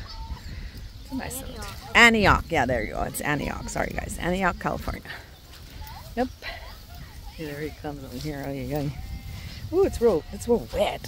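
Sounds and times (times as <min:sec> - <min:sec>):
breeze rumbling on microphone: 0:00.0 - 0:11.0.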